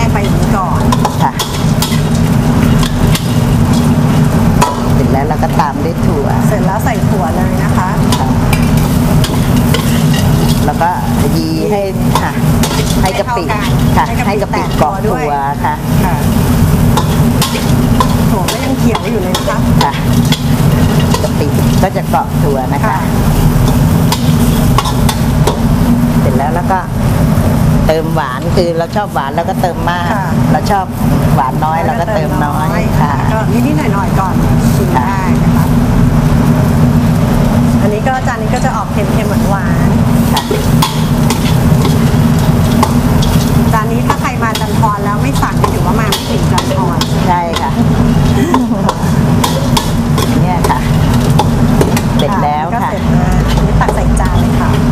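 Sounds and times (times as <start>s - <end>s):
frying sizzle in wok: 0.0s - 54.9s
spatula scraping wok: 0.0s - 54.9s
steady low hum: 0.0s - 54.9s.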